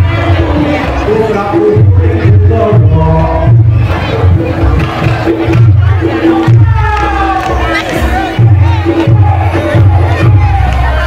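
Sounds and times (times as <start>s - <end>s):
crowd shouting: 0.0s - 11.0s
live music with low beat: 0.0s - 11.0s.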